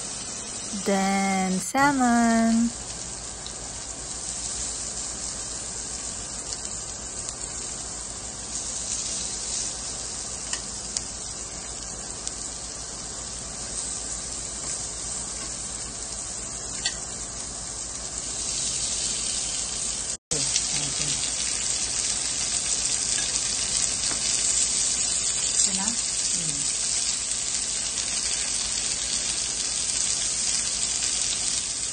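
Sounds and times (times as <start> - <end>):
food sizzling on a grill: 0.0 - 31.9.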